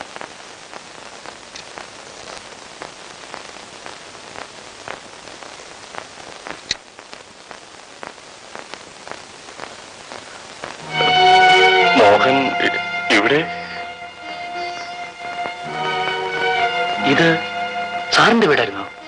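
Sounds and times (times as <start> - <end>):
crackles and clicks: 0.0 - 17.5
faint steady hiss: 0.0 - 19.0.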